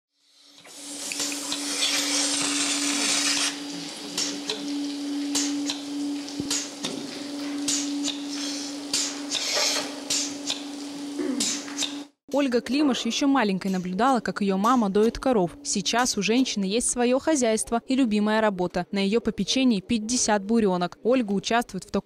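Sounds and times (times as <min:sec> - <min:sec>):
air hissing through teat cups: 0:00.2 - 0:04.5, 0:07.6 - 0:10.6, 0:11.2 - 0:12.0
milking machine humming: 0:00.6 - 0:12.0.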